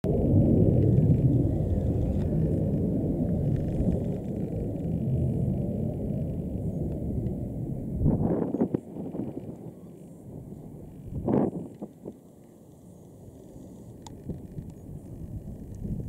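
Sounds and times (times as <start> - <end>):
loud low rumble: 0.0 - 11.9.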